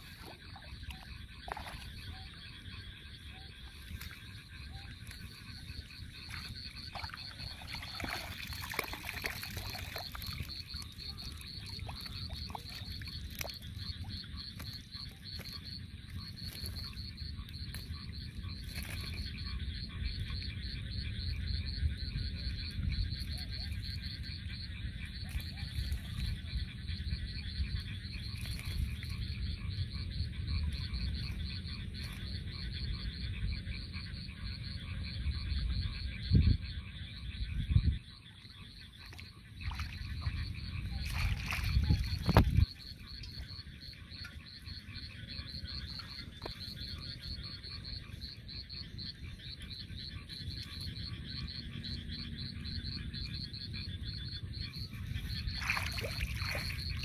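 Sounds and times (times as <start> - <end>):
frogs calling in pulsing trill: 0.0 - 57.0.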